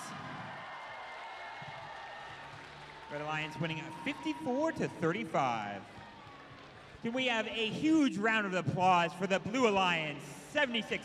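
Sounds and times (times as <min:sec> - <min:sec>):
crowd applause: 0:00.0 - 0:11.0.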